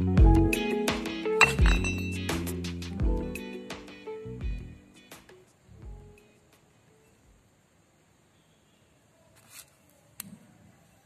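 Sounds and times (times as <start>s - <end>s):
background guitar music: 0.0s - 6.2s.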